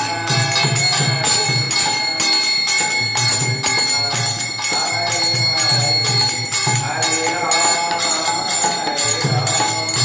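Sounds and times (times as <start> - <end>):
hand cymbals struck in rhythm: 0.0 - 10.0.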